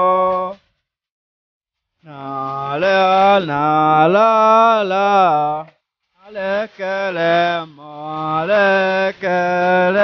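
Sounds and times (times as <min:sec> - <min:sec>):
man singing unaccompanied: 0:00.0 - 0:00.6, 0:02.0 - 0:10.0.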